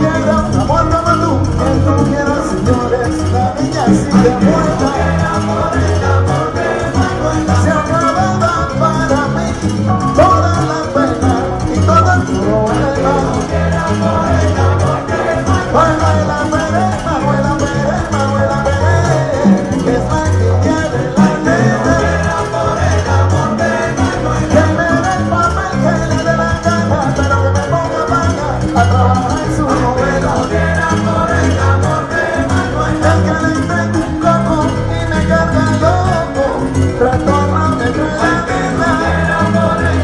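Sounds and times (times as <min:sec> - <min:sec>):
live salsa band music: 0:00.0 - 0:40.0.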